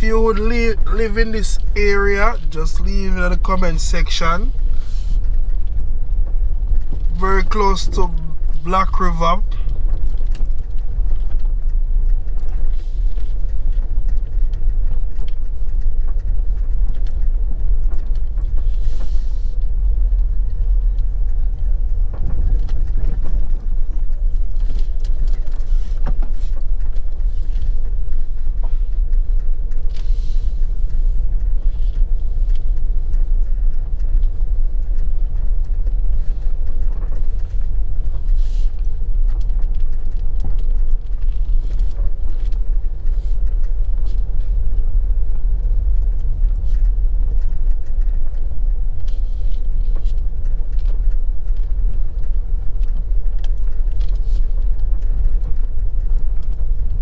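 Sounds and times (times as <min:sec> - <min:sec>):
car engine and tyres rumbling: 0:00.0 - 0:57.0.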